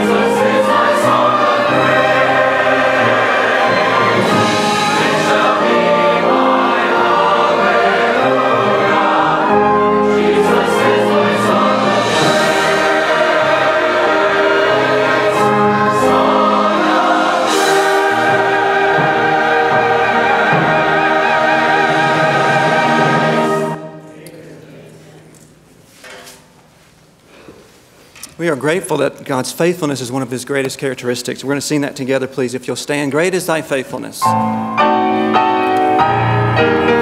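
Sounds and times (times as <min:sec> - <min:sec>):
orchestra playing: 0:00.0 - 0:24.4, 0:34.3 - 0:37.0
choir singing a hymn: 0:00.0 - 0:24.9, 0:34.9 - 0:37.0.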